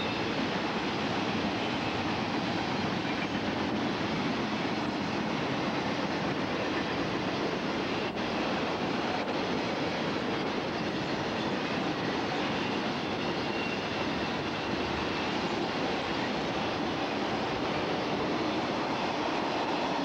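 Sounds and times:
freight train wheels rumbling: 0.0 - 20.0.

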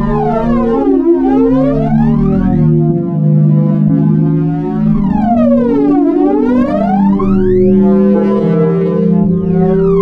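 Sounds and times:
ambient electronic music: 0.0 - 10.0
pitch sweep: 1.0 - 10.0.

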